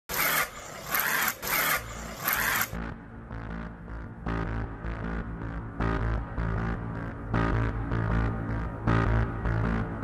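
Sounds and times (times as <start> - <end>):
music with low beat: 2.8 - 10.0.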